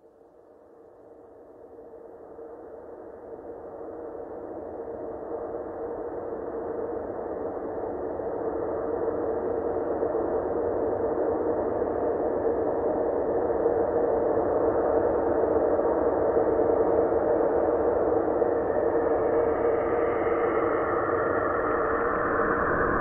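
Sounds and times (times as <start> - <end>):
ambient drone hum: 16.8 - 23.0.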